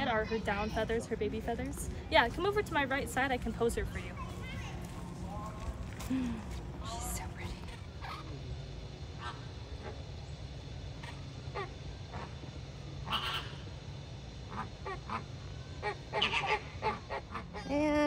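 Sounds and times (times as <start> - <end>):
flamingos honking: 9.1 - 10.2, 11.0 - 13.8, 14.5 - 17.8.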